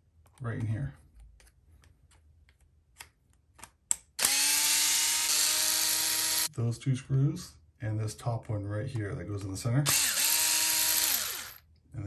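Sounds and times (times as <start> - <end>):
electric screwdriver motor whine: 4.2 - 6.5, 9.9 - 11.6.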